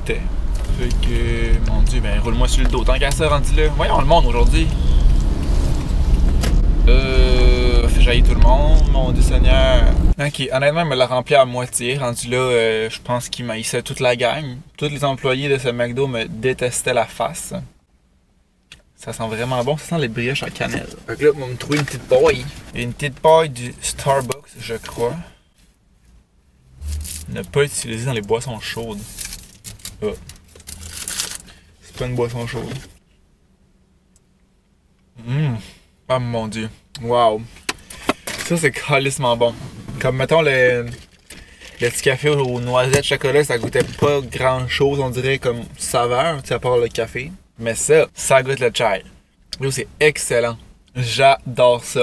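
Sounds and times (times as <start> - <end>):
car engine rumble and road noise: 0.0 - 35.4, 36.0 - 52.0.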